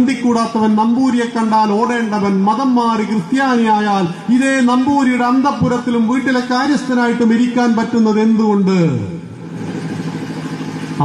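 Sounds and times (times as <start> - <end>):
engine humming: 9.3 - 11.0.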